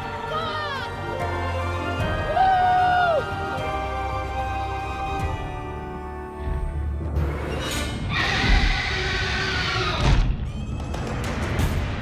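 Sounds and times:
dramatic orchestral music: 0.0 - 12.0
dragon screech: 7.8 - 10.7.

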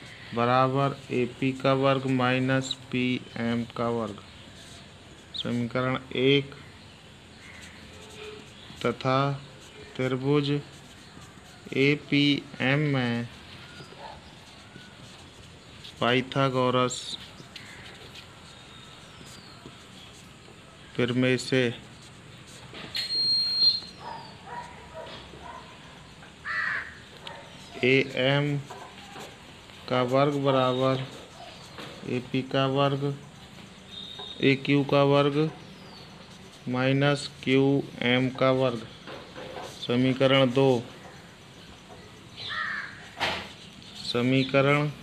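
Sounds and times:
birds calling: 0.0 - 45.0
bird calling: 17.0 - 20.3, 22.9 - 29.4, 30.4 - 36.7, 40.7 - 44.9.

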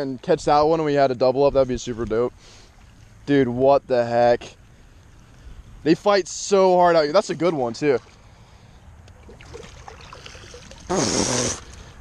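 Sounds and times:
faint water sounds: 0.0 - 12.0.

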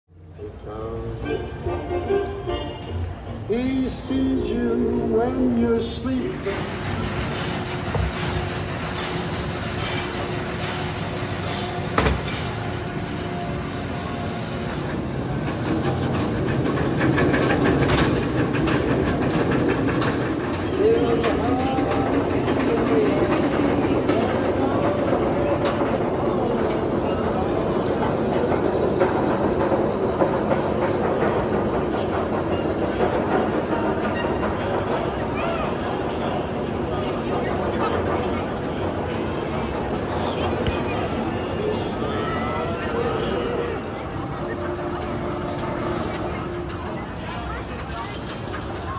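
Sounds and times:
people's voices: 0.3 - 48.9
roller coaster chain lift clatter: 3.6 - 48.9.

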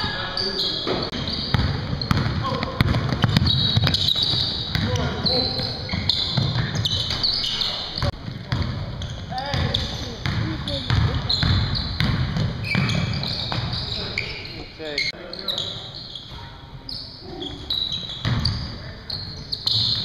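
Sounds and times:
sneakers squeaking: 0.0 - 20.0
basketball bouncing on hardwood: 1.2 - 5.0, 8.0 - 8.9, 9.5 - 13.8, 18.2 - 18.6.

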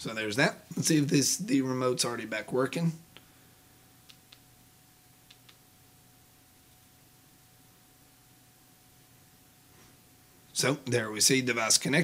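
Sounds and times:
faint steady hum: 0.0 - 12.0
remote button clicks: 5.3 - 5.6.

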